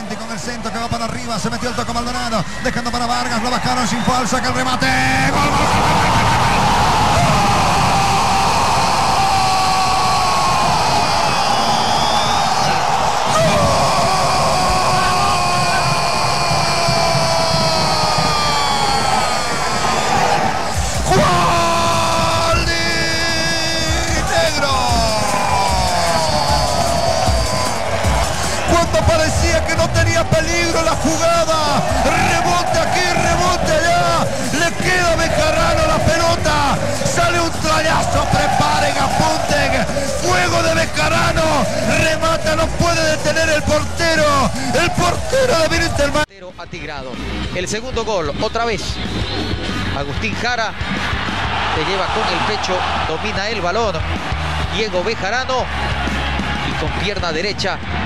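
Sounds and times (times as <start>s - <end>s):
music: 0.0s - 58.0s
stadium noise: 0.0s - 58.0s
commentator crying out: 13.2s - 46.2s.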